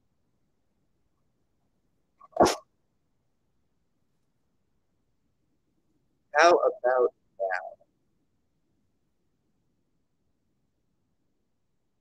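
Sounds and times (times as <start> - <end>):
short sharp noise burst: 2.3 - 2.6.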